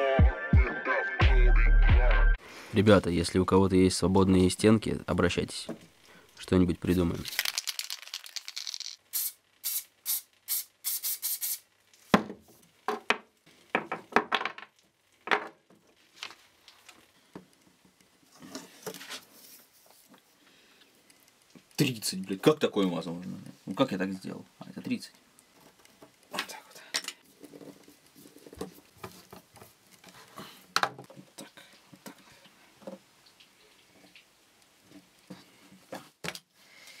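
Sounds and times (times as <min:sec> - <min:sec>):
spray can hissing: 0:08.5 - 0:11.7.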